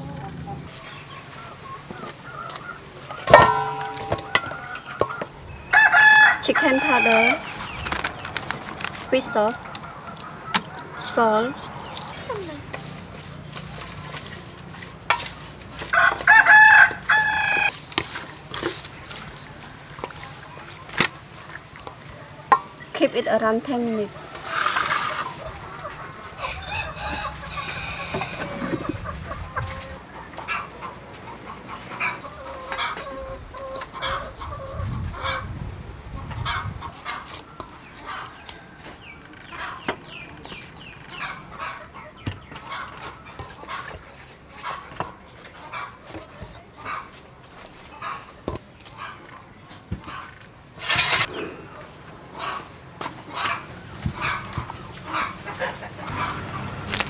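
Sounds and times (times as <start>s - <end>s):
chickens clucking: 0.0s - 57.0s.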